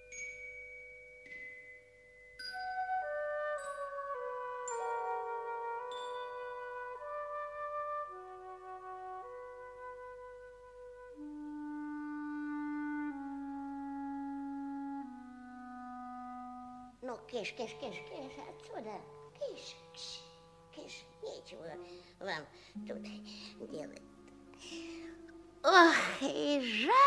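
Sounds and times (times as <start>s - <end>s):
low orchestral note: 3.6s - 26.0s
held wind chords: 9.2s - 27.0s
bell-like struck notes: 22.7s - 25.3s.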